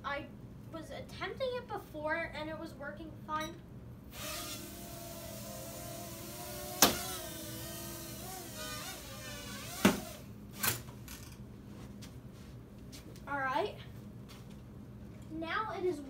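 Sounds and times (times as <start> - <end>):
toy drone motors whirring: 4.1 - 11.2.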